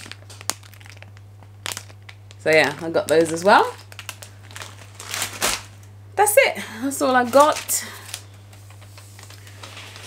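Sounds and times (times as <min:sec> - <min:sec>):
plastic packet crinkling: 0:00.0 - 0:05.9, 0:07.1 - 0:10.0
sharp plastic crackles: 0:00.0 - 0:05.9, 0:07.2 - 0:10.0.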